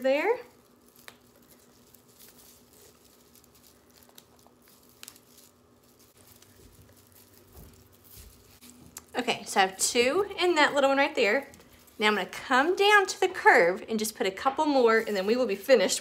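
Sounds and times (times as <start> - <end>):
plastic mesh rustling and crinkling: 0.0 - 13.0.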